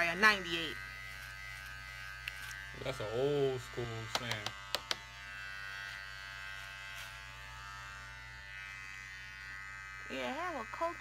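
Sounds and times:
electric hair trimmer buzzing: 0.0s - 11.0s
sharp clicks: 4.1s - 5.0s.

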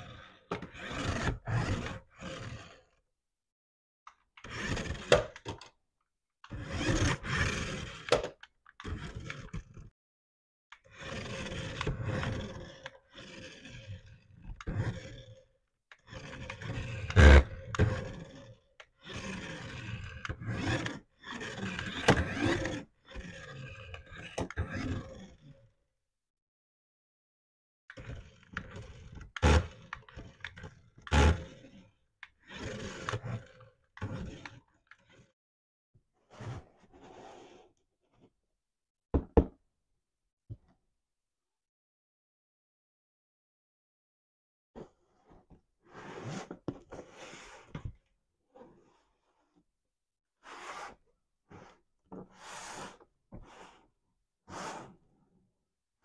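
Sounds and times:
toy car electric motor whirring: 15.9s - 18.3s.

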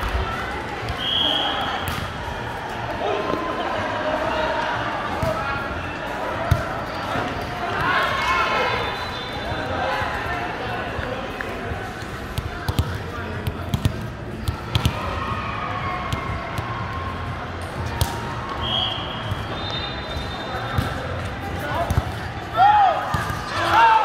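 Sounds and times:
volleyball bouncing on gym floor: 12.0s - 15.1s, 17.7s - 18.4s, 19.2s - 22.3s, 23.0s - 23.5s
players shouting: 14.8s - 24.0s.

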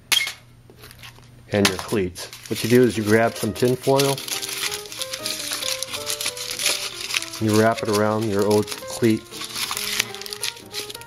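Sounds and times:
tin foil crinkling: 0.8s - 11.0s
soft melody: 2.5s - 11.0s.

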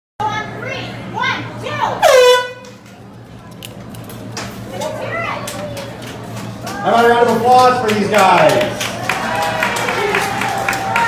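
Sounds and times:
crowd chatter: 0.2s - 11.0s
air horn blast: 2.0s - 2.8s.

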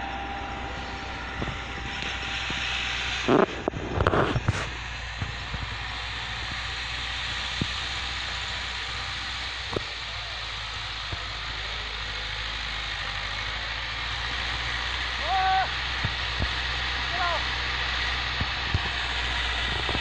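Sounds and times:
distant tractor diesel engine: 0.0s - 20.0s
outdoor hiss: 0.0s - 20.0s.

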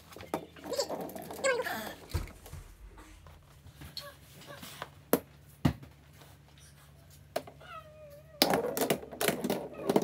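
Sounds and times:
balls clacking together: 0.0s - 2.3s, 8.2s - 10.0s.

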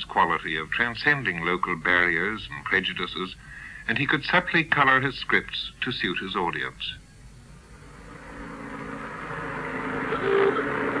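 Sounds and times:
tape recording hiss: 0.0s - 11.0s
road vehicle running: 7.6s - 11.0s
short tone: 8.2s - 11.0s.

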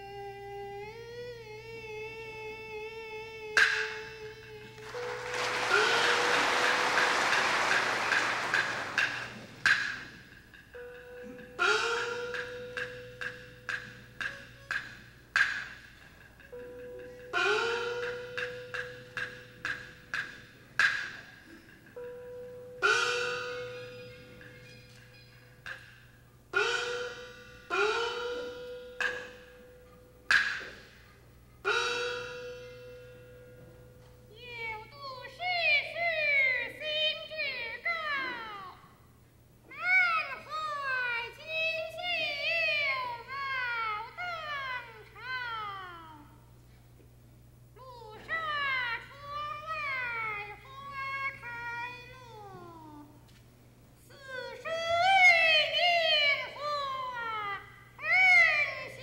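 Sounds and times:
clapper and drum clicks: 4.8s - 10.1s.

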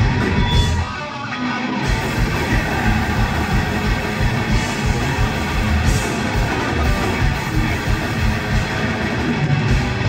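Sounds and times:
bass: 0.0s - 1.0s, 1.8s - 10.0s
distorted electric guitars: 0.0s - 10.0s
fast drumming: 1.8s - 10.0s.

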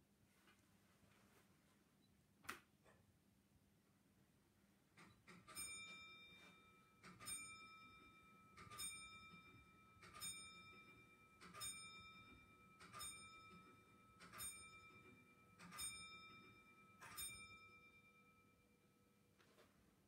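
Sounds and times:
faint bell ringing: 5.5s - 20.0s.

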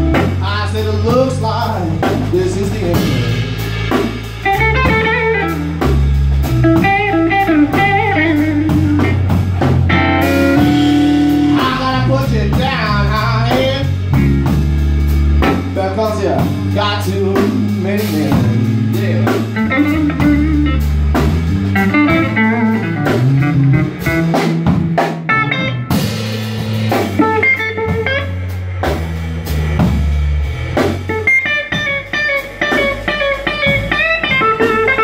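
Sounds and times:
drum kit: 0.0s - 35.0s
electric guitar lead lines: 0.0s - 35.0s
steady low bass line: 0.0s - 35.0s.

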